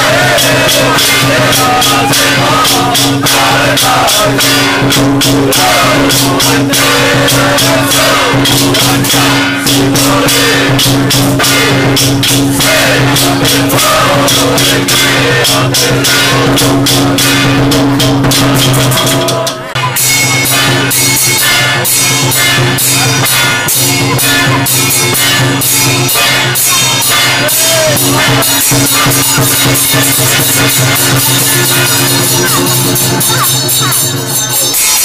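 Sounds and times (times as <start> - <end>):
rapid jangling percussion: 0.0 - 35.0.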